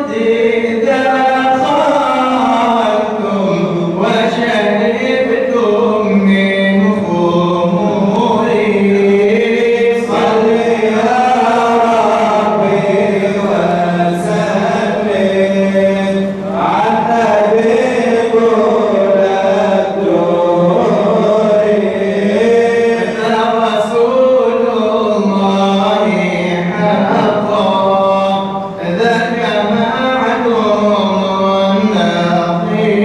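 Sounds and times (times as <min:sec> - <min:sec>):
man chanting into a microphone: 0:00.0 - 0:33.0.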